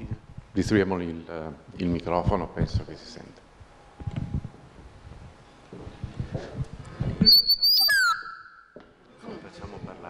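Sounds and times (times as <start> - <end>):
microphone feedback whistle: 7.2 - 8.8.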